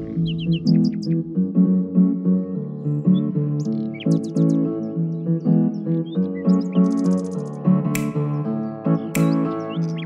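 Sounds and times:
high bird chirps: 0:00.0 - 0:01.2, 0:05.8 - 0:10.0
music of held chords: 0:00.0 - 0:10.0.

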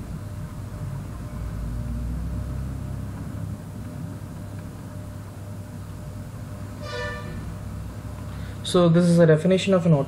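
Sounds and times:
passing vehicle rumble: 0:00.0 - 0:04.2.

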